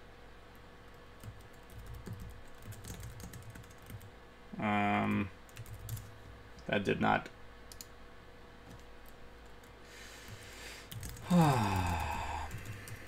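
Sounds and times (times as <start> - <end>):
typing on computer keyboard: 1.2 - 4.1, 5.5 - 6.1, 10.3 - 13.0
short hummed voice: 4.5 - 5.4, 11.2 - 12.7.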